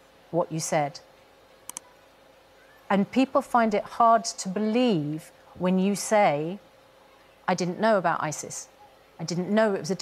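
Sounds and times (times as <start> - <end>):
sharp clicks: 1.7 - 1.9.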